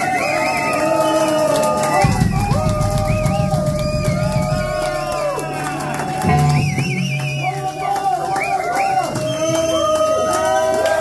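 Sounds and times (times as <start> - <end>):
rock band playing live: 2.0 - 7.7.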